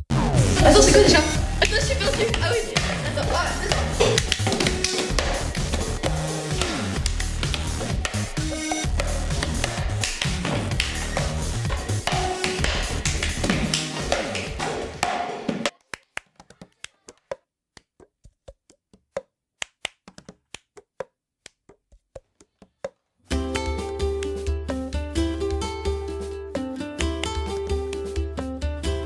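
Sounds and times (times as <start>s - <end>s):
music with heavy bass beat: 0.0s - 15.1s.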